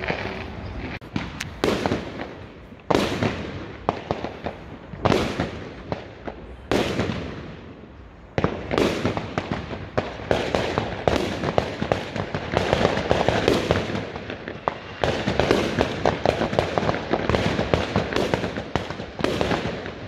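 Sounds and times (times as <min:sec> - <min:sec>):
firework pops and crackles: 0:00.0 - 0:20.0
fireworks bursting with loud bangs: 0:00.0 - 0:20.0.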